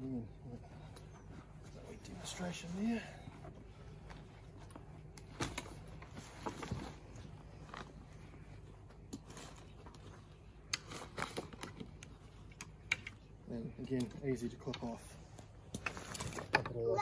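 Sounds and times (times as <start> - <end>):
fabric and strap rustling: 0.4 - 12.9.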